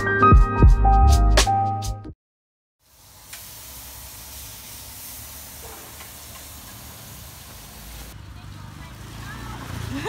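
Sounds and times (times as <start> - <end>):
steam hissing from pot: 2.8 - 8.2.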